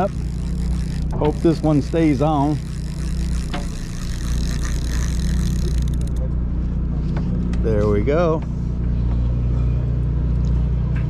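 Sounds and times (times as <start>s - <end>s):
boat engine droning: 0.0s - 11.0s.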